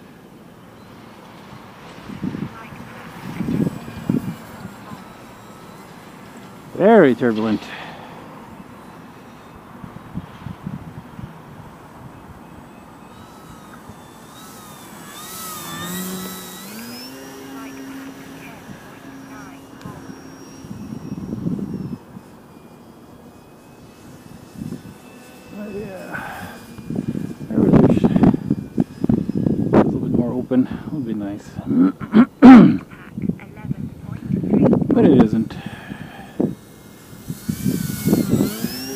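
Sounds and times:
model plane motor whining: 0.0 - 38.9
wind rumbling on microphone: 1.9 - 7.4, 9.6 - 22.5, 23.9 - 25.0, 25.8 - 38.9.

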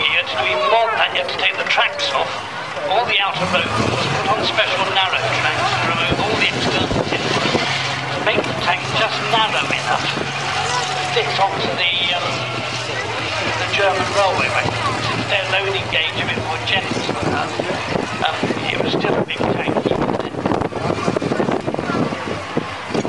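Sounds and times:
tank engine humming: 0.0 - 23.0.

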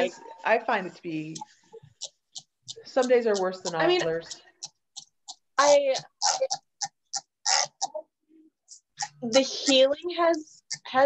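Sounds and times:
woman speaking: 0.0 - 1.5, 2.8 - 4.5, 9.0 - 11.0.

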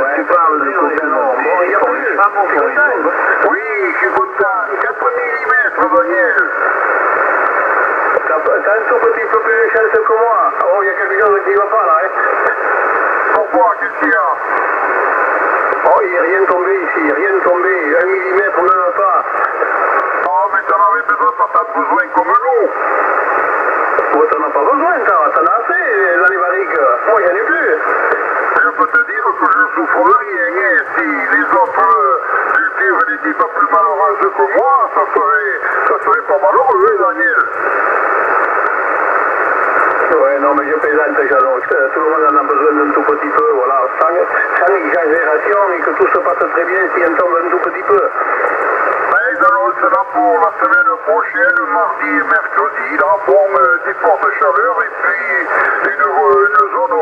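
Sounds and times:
radio band hiss: 0.0 - 57.0
radio speech through speaker: 0.0 - 57.0.

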